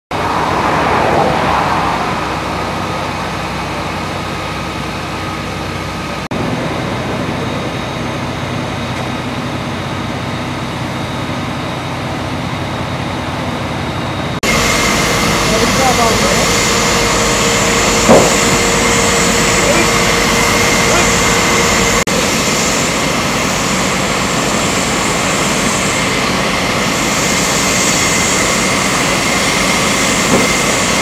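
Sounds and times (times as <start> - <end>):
fire engine pump humming: 0.1 - 31.0
loud hiss: 14.4 - 31.0.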